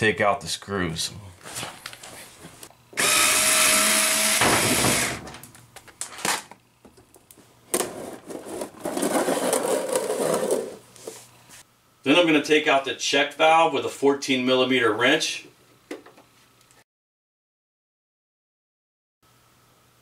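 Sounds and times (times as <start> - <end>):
cordless drill running: 3.0 - 5.2
plastic tank scraping: 7.8 - 10.8.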